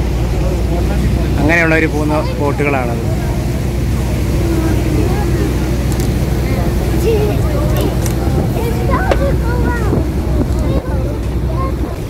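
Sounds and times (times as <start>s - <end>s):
boat engine rumble: 0.0s - 12.0s
faint voices: 0.0s - 12.0s.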